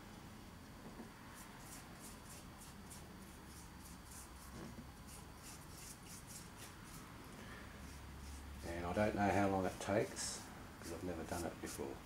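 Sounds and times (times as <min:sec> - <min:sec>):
paintbrush brushing on wood: 0:01.4 - 0:07.1, 0:07.8 - 0:09.2, 0:10.8 - 0:12.0.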